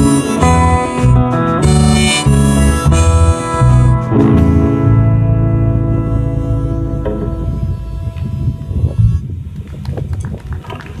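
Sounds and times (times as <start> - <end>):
electric guitar chord ringing: 0.0 - 8.9
low rumble: 4.1 - 10.5.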